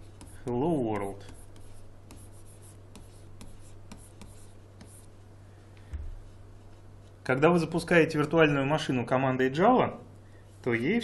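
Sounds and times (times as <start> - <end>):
stylus tapping and scratching: 0.0 - 5.2
steady low hum: 0.0 - 11.0.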